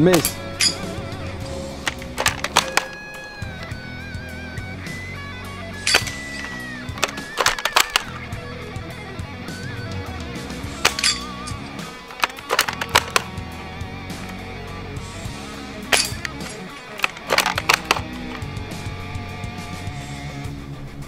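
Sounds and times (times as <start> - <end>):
pellets hitting targets: 0.0 - 3.7, 5.8 - 8.3, 10.6 - 13.4, 15.8 - 18.6
guitar background music: 0.0 - 21.0
airsoft rifle snaps: 1.6 - 3.7, 5.8 - 8.4, 10.8 - 14.4, 15.8 - 18.7.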